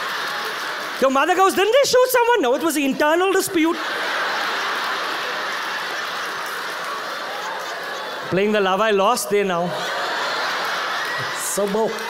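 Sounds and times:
audience applauding: 0.0 - 12.0
audience laughing: 0.0 - 12.0.

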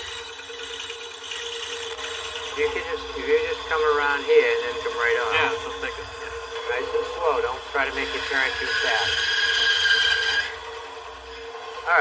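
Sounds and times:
bandsaw blade whining in wood: 0.0 - 12.0
bandsaw running hum: 0.0 - 12.0.

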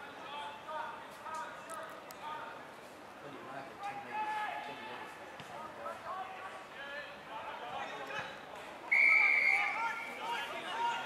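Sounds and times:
voices calling and shouting: 3.7 - 11.0.

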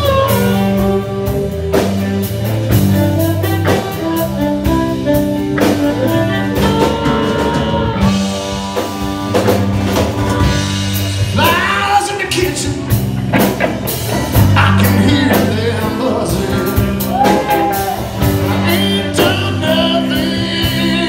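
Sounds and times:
harmonica long held notes: 0.0 - 11.2
blues-rock band playing: 0.0 - 21.0.

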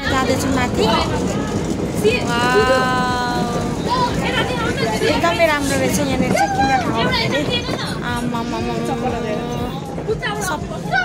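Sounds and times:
busy indoor market hum: 0.0 - 11.0
people's voices: 0.0 - 11.0
voice holding a long note: 8.0 - 10.0.

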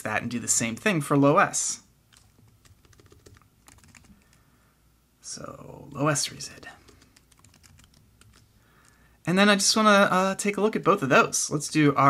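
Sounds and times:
keyboard typing: 2.1 - 4.4, 6.5 - 9.0.

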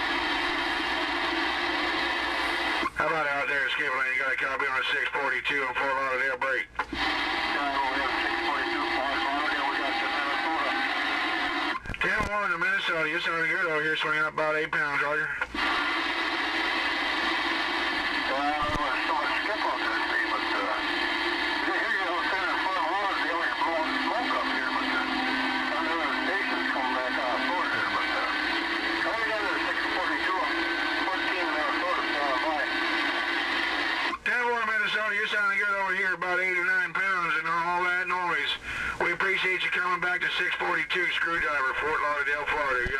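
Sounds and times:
radio static: 0.0 - 42.9
garbled radio voice: 2.8 - 15.5, 18.0 - 42.9.

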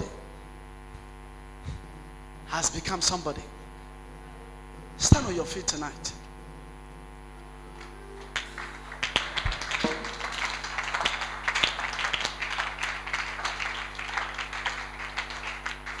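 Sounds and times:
electrical mains hum: 0.0 - 16.0
congregation clapping: 7.8 - 16.0.

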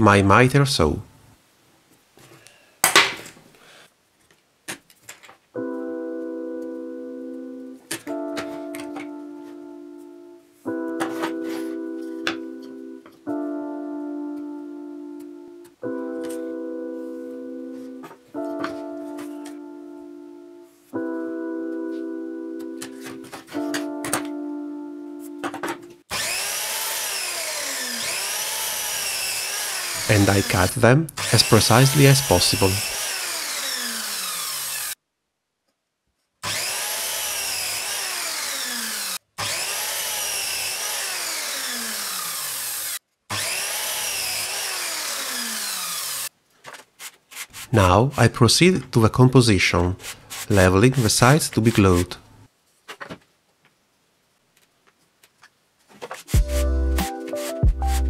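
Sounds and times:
sustained keyboard chords: 5.6 - 26.0, 56.4 - 58.0
miter saw running: 26.1 - 35.0, 36.4 - 46.3
pencil marking on wood: 47.0 - 47.9, 50.0 - 51.2.

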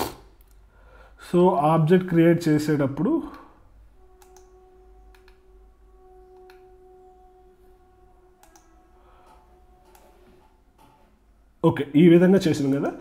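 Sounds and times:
faint electrical hum: 0.0 - 13.0
computer keyboard clicks: 4.2 - 4.5, 8.4 - 8.7.

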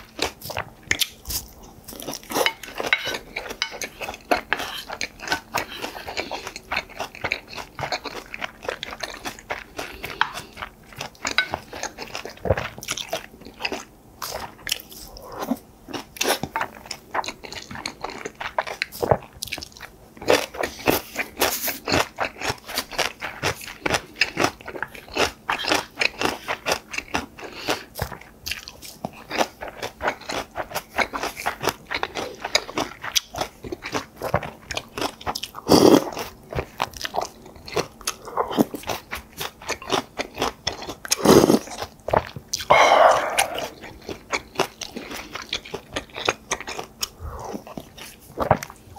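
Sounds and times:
close-miked chewing and crunching: 0.0 - 48.9
wet mouth noises: 42.6 - 44.2.

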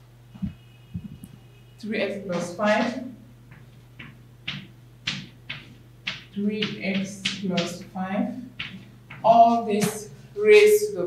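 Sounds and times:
chalk writing on blackboard: 2.3 - 7.9.

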